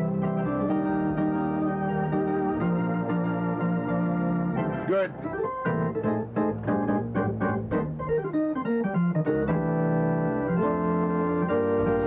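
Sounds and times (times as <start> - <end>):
arena organ music: 0.0 - 12.0.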